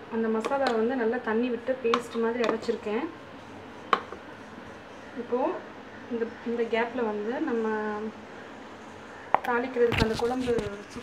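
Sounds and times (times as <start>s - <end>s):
woman speaking: 0.0s - 3.2s, 5.2s - 8.2s, 9.4s - 11.0s.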